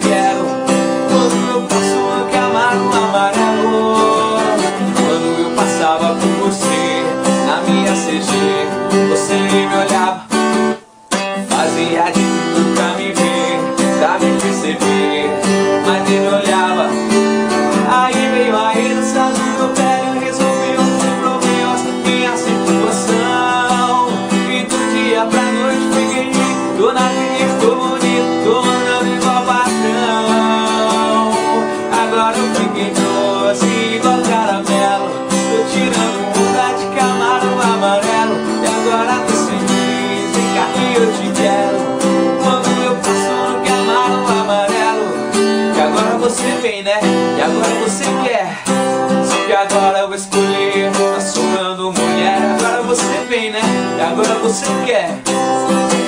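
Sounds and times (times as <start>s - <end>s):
acoustic guitar strumming: 0.0s - 56.0s
man singing: 0.0s - 56.0s.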